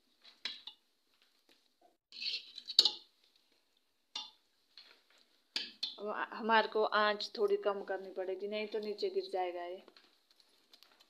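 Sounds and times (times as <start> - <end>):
metal ladle scraping a steel pot: 2.1 - 3.1.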